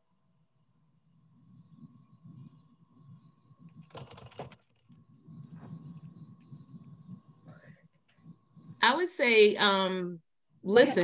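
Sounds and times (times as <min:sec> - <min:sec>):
keyboard typing: 0:03.7 - 0:05.0
faint steady high tone: 0:04.9 - 0:10.2.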